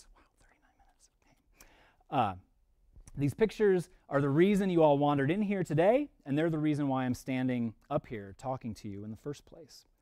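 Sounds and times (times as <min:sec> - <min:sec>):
faint breathy sounds: 0:00.0 - 0:02.5
man speaking: 0:02.1 - 0:10.0.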